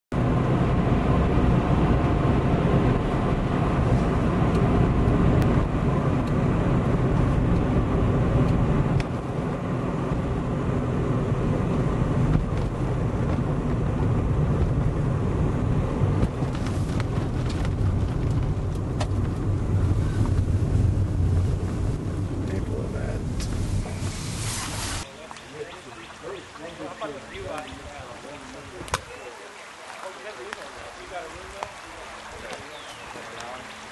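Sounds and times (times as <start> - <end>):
car road and engine noise: 0.1 - 29.0.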